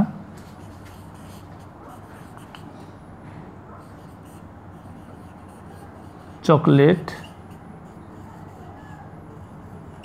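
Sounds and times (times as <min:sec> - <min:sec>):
steady background hum: 0:00.0 - 0:10.0
marker scratching on whiteboard: 0:00.4 - 0:10.0.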